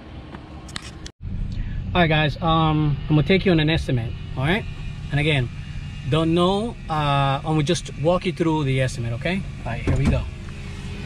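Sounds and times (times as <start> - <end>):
outdoor background noise: 0.0 - 11.0
low rumble inside truck cab: 0.7 - 11.0.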